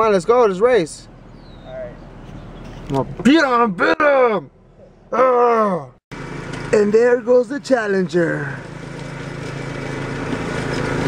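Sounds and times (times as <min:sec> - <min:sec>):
riding lawn mower engine humming: 0:00.0 - 0:03.2, 0:06.1 - 0:11.0.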